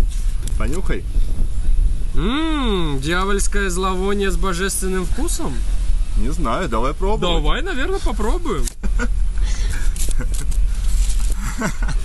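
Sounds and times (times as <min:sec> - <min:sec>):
low wind rumble on microphone: 0:00.0 - 0:12.0.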